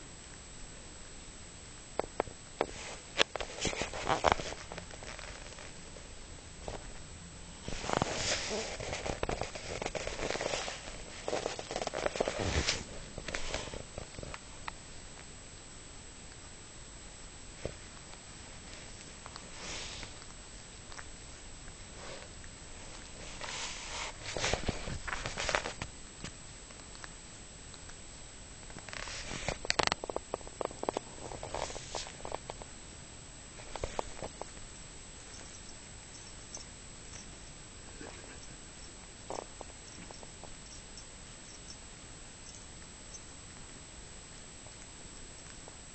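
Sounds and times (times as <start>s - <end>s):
faint hiss: 0.0s - 45.9s
cat tongue licking fur: 17.7s - 28.6s.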